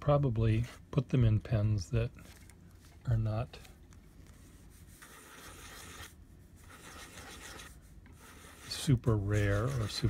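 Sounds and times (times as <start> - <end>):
pen nib scratching paper: 4.8 - 10.0.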